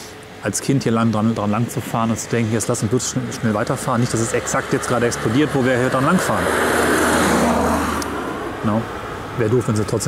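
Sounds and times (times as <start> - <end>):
car passing close by: 3.8 - 9.3.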